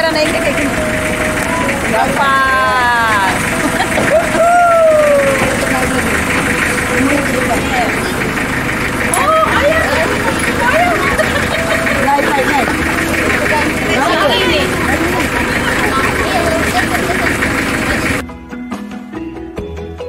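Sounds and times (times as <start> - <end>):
people talking and calling out: 0.0 - 18.2
truck engine idling: 0.0 - 18.2.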